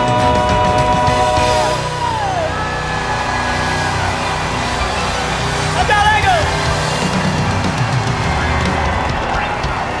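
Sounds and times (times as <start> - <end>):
live gospel band music: 0.0 - 4.6.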